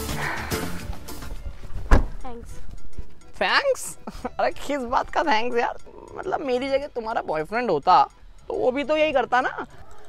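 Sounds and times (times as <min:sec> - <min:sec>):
background music: 0:00.0 - 0:10.0
car door shutting: 0:01.7 - 0:02.2.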